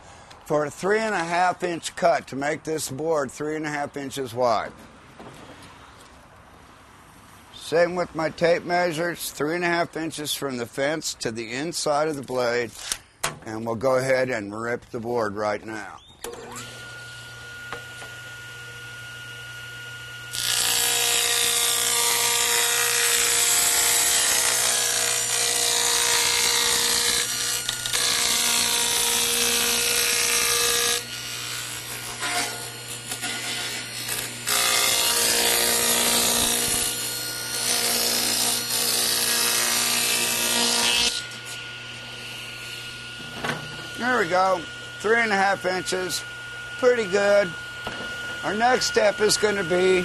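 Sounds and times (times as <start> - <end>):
table saw motor running: 16.3 - 50.0
saw blade cutting wood: 20.2 - 50.0.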